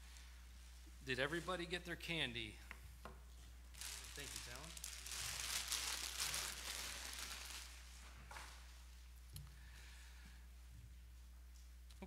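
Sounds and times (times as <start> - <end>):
plastic bag crinkling: 3.7 - 8.7.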